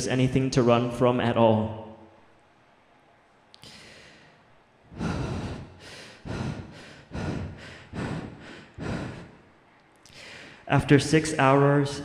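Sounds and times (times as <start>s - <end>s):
man breathing into microphone: 3.6s - 10.7s.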